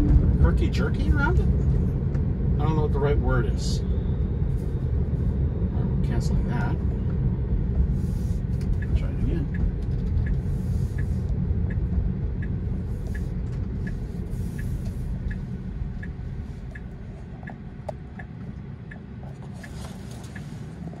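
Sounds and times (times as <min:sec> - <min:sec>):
road and tyre rumble: 0:00.0 - 0:21.0
turn-signal indicator ticking: 0:08.5 - 0:21.0.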